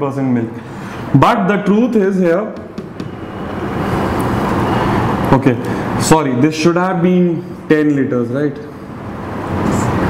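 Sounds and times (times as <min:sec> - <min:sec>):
road traffic: 0:00.6 - 0:01.2, 0:01.9 - 0:10.0.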